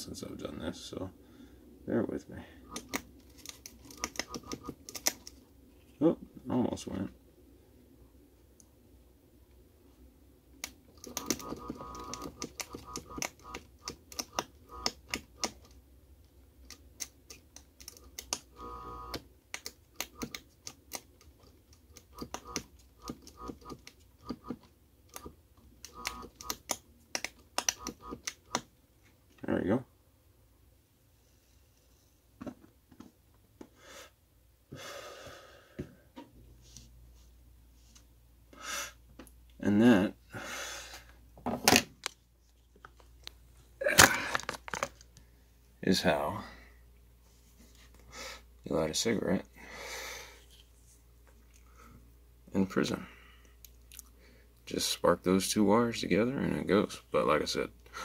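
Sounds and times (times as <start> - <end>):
faint electrical buzz: 0.0 - 29.9.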